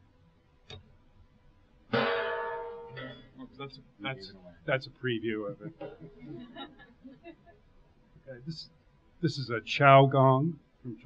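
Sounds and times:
gong strike ringing: 2.0 - 3.6.

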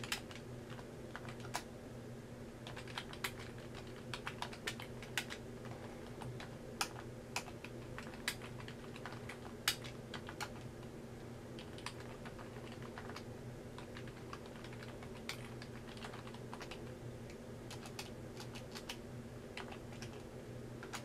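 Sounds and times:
computer keyboard typing: 0.0 - 1.7, 2.6 - 10.8, 11.6 - 16.9, 17.7 - 21.0
steady low hum: 0.0 - 21.0.

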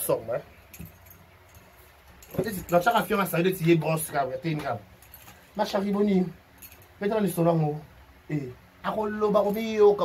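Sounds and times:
man speaking: 0.0 - 0.5, 2.3 - 4.9, 5.6 - 6.4, 7.0 - 10.0.

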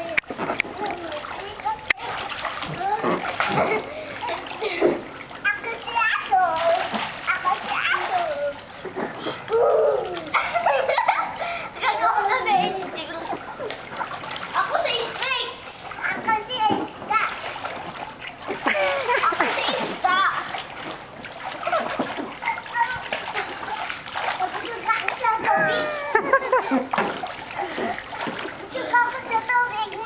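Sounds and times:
children splashing in water: 0.0 - 30.0
children calling out: 24.5 - 26.6.

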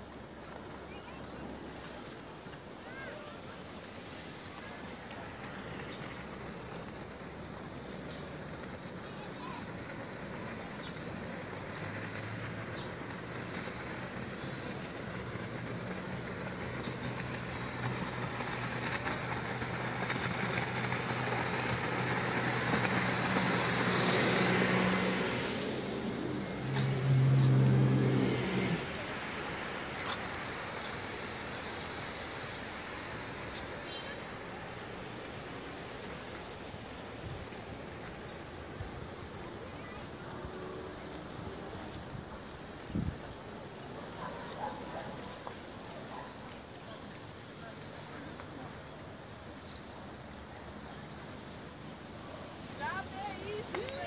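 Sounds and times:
motorboat engine humming: 3.6 - 47.5.

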